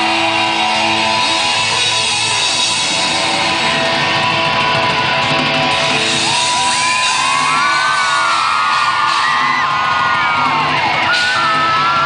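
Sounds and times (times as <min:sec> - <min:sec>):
rock band playing loudly: 0:00.0 - 0:12.0.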